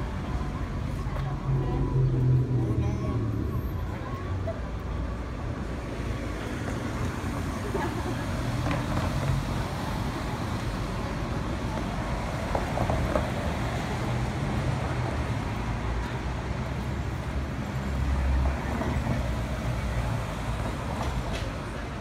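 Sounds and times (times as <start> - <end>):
cars driving past: 0.0 - 22.0.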